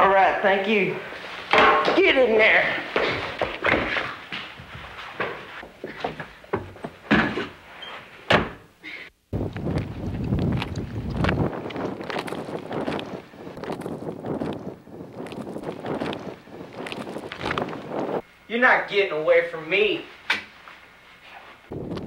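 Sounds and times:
wind buffeting microphone: 9.3 - 18.2, 21.7 - 22.0
rustling through brush: 9.7 - 18.2.

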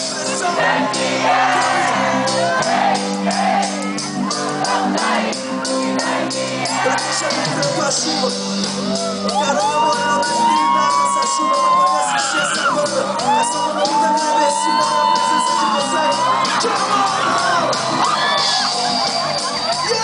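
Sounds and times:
live reggae band: 0.0 - 20.0.

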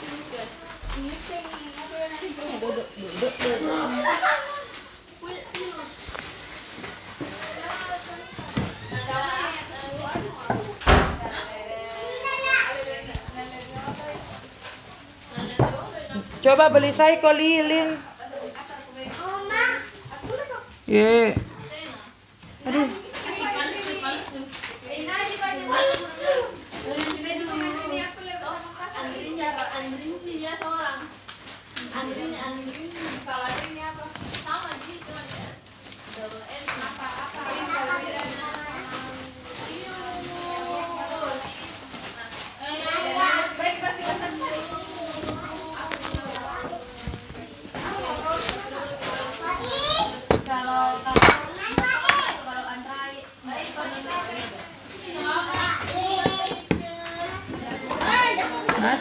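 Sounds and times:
children's chatter: 0.0 - 16.2, 18.0 - 20.8, 21.4 - 31.1, 31.8 - 59.0
people talking: 36.1 - 59.0.

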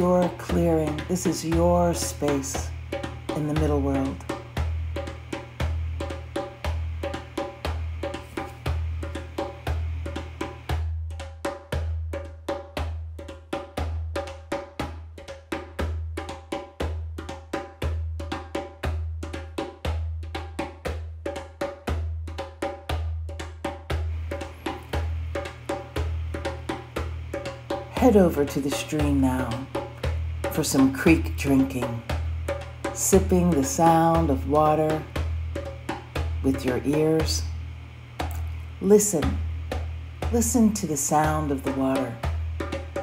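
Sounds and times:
clicky percussion beat: 0.0 - 43.0
deep drum pulse: 0.0 - 43.0.

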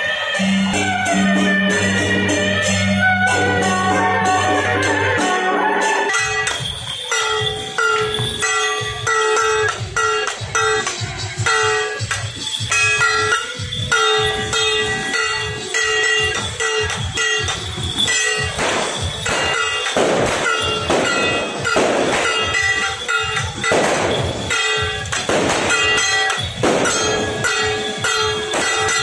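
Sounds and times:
procession music with percussion: 0.0 - 29.0.

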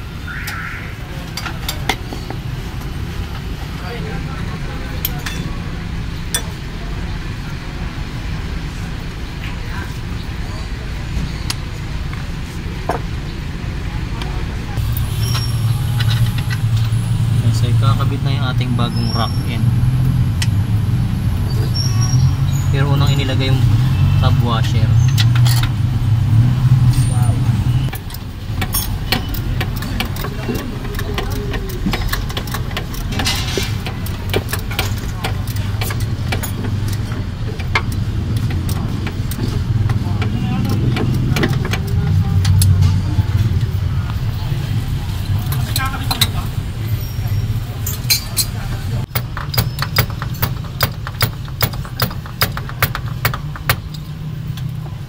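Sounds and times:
people talking: 3.7 - 19.7, 21.4 - 25.1, 29.9 - 32.2, 38.5 - 49.1
vehicle engine running: 11.6 - 48.0
metal tools clinking: 26.9 - 39.6, 45.2 - 54.3.

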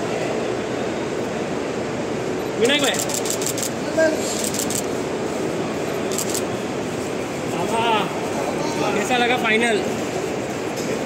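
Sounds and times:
urban background rumble and hiss: 0.0 - 11.0.

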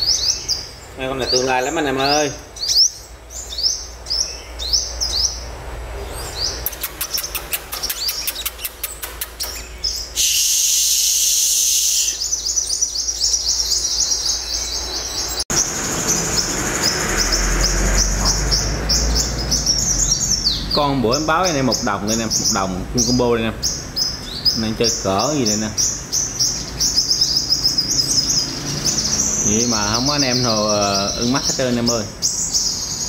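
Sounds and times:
songbirds chirping: 0.0 - 33.0
fast ticking bird trill: 6.2 - 33.0
loud hiss: 10.1 - 12.3.

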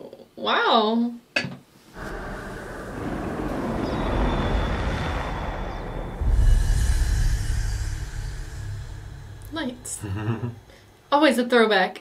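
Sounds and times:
deep rumble: 1.9 - 11.1.

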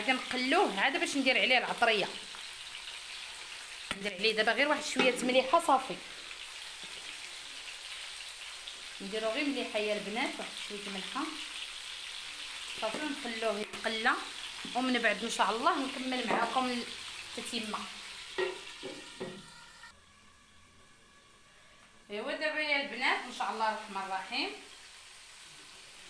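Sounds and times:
meat sizzling in oil: 0.0 - 19.9, 23.2 - 26.0.

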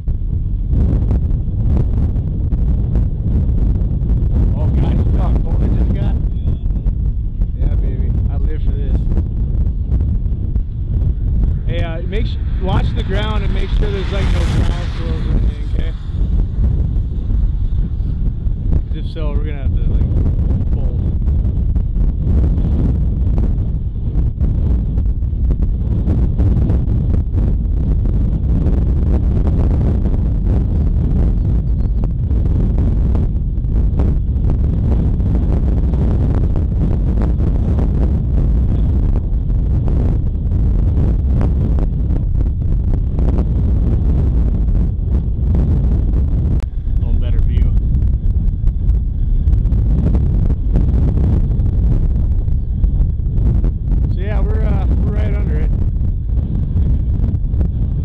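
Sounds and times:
thunder rumble: 0.0 - 58.0
wind buffeting microphone: 0.0 - 58.0.

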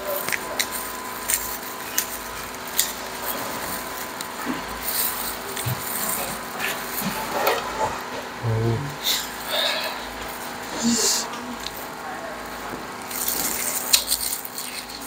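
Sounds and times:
crackling and rustling: 0.0 - 8.4, 9.1 - 15.0
prawn shell snapping: 0.1 - 7.7, 13.0 - 15.0.

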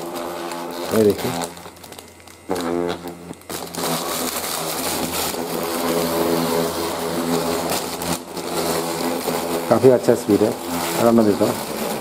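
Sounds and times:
massager vibration motor humming: 0.0 - 12.0.

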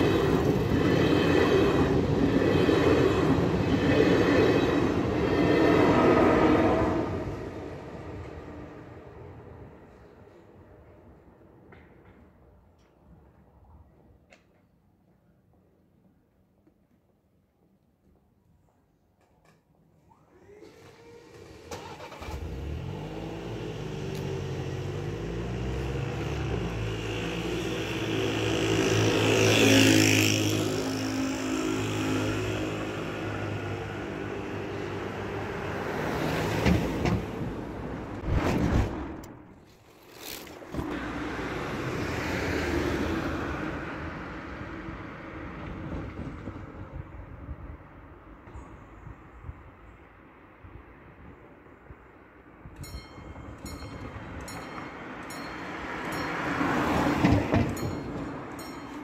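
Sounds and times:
train passing: 0.0 - 12.8, 21.4 - 39.8, 40.8 - 49.0, 50.2 - 59.0
cars driving over crossing: 40.8 - 45.8, 53.3 - 58.6.

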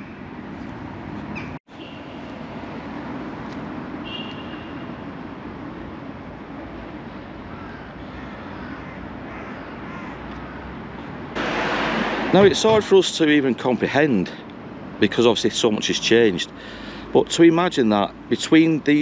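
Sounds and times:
road traffic hum: 0.0 - 19.0.

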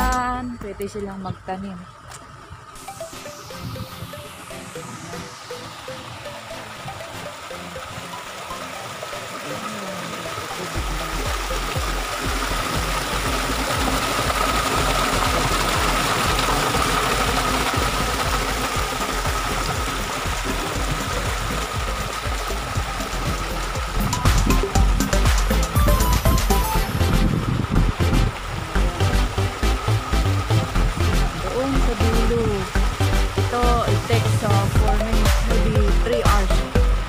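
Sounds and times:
water gushing into a basin: 2.5 - 37.0.

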